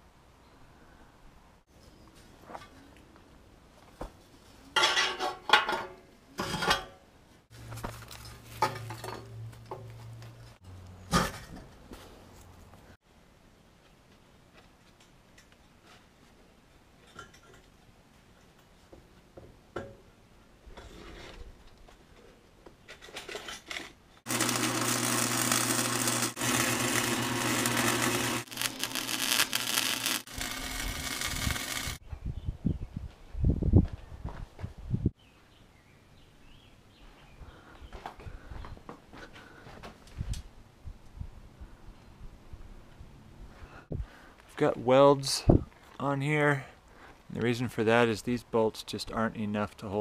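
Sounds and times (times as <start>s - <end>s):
crackling welding arc: 24.3s - 32.0s
welder humming: 24.3s - 32.0s.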